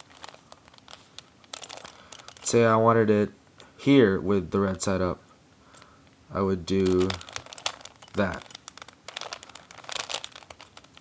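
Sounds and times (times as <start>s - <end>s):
puzzle cube plastic clicks: 6.8s - 11.0s.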